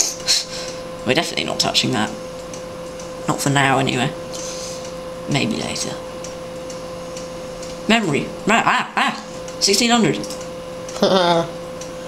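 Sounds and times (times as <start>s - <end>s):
low hum with constant tone: 0.0s - 12.0s.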